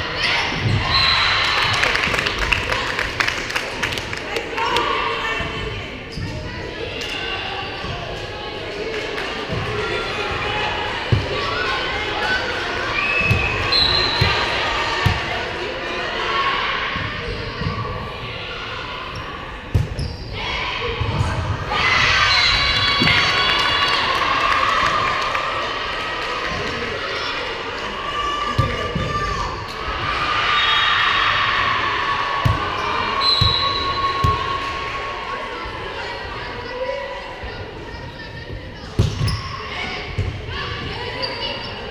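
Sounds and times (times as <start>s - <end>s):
spectators cheering: 21.7s - 35.5s.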